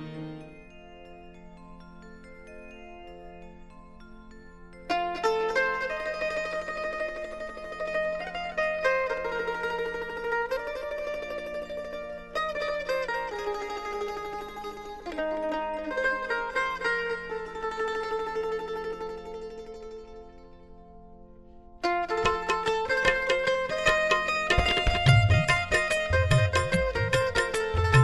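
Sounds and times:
plucked string melody: 0:00.0 - 0:01.5, 0:04.8 - 0:28.0.

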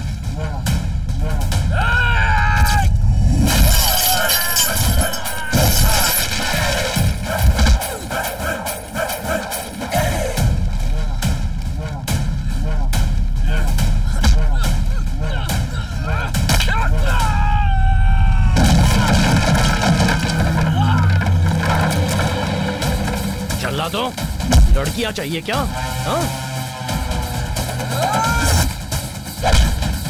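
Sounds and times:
action film music: 0:00.0 - 0:30.0
punch and hit sound effects: 0:14.2 - 0:14.6, 0:29.4 - 0:30.0.

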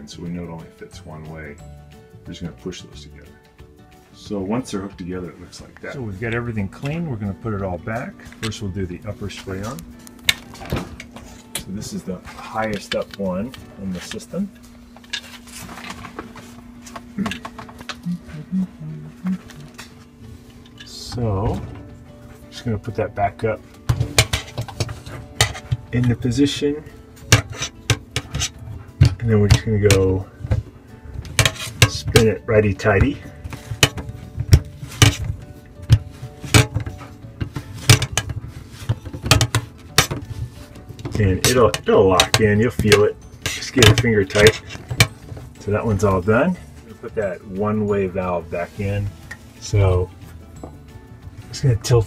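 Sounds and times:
steady low hum: 0:03.9 - 0:51.2.

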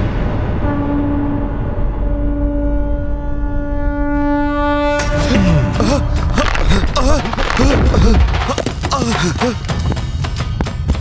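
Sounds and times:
long held horn-like note: 0:00.5 - 0:05.7.

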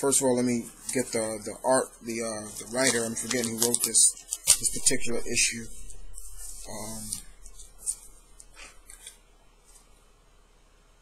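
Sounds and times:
comic book paper rustling: 0:02.1 - 0:09.9.

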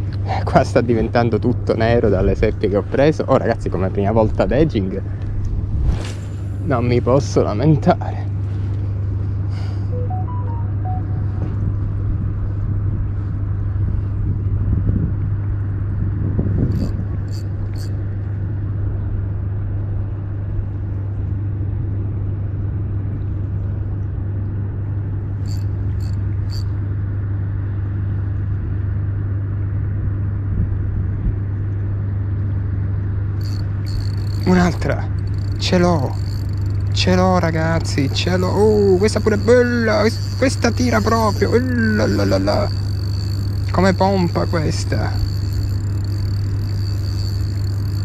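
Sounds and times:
continuous rumble: 0:00.0 - 0:48.0
steady low hum: 0:00.0 - 0:48.0.

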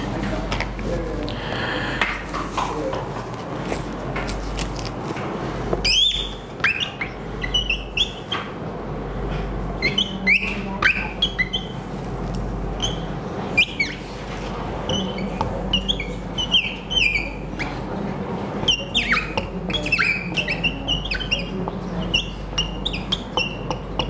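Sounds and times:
marker squeaking on whiteboard: 0:05.8 - 0:08.6, 0:09.8 - 0:12.0, 0:12.8 - 0:17.9, 0:18.6 - 0:24.0.

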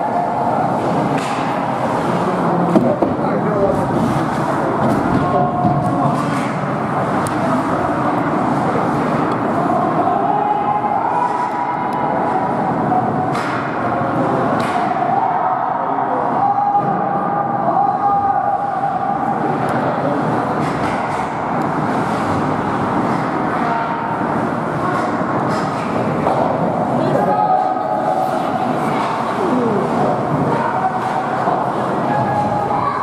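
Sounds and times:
din of rink and spectators: 0:00.0 - 0:33.0
hockey sticks and puck clacking: 0:00.7 - 0:03.2, 0:14.5 - 0:15.0, 0:28.9 - 0:32.5.

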